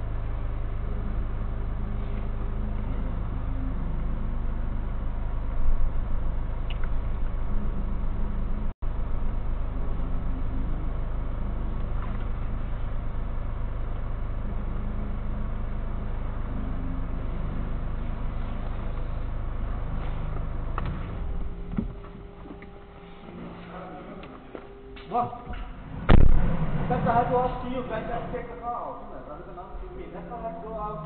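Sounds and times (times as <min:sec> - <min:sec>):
car engine idling: 0:00.0 - 0:31.0.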